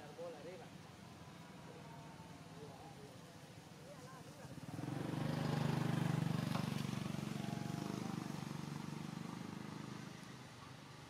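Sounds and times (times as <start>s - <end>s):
vehicle engine passing by: 4.5s - 10.6s.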